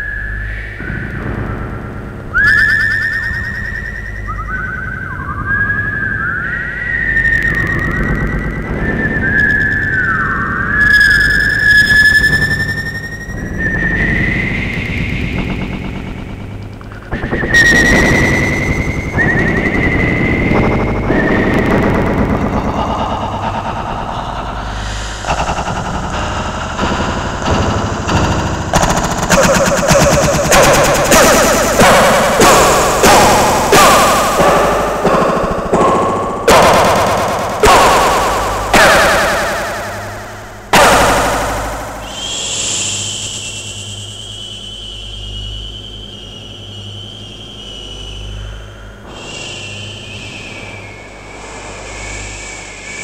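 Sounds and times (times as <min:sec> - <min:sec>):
swooping whistle-like tones: 0:00.0 - 0:53.0
fast rattling pulse: 0:07.0 - 0:44.3.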